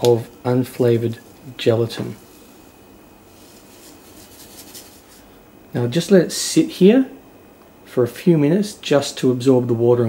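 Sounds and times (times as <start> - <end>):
granules and paper rustling: 3.3 - 5.2.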